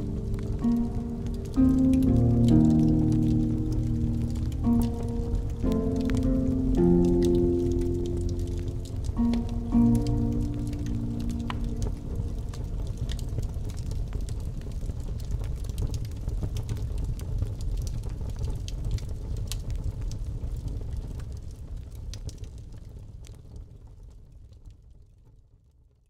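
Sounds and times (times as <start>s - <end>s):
fire popping: 0.0s - 25.0s
wood fire crackling: 0.0s - 25.2s
low fire rumble: 0.0s - 26.0s.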